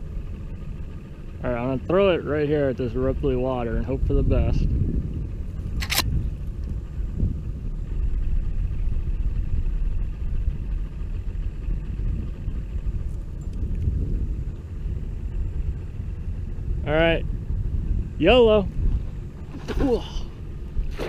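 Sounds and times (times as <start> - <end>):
outboard motor idling: 0.0 - 21.0
faint thin whine: 5.6 - 21.0.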